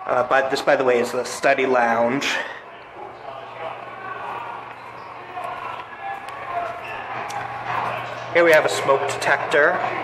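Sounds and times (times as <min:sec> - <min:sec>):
faint voices: 0:00.0 - 0:10.0
footsteps in a corridor: 0:02.7 - 0:08.6.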